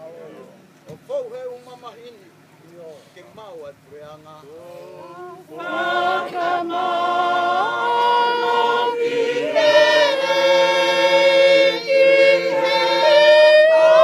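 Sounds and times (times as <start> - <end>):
choir singing unaccompanied: 4.6 - 14.0.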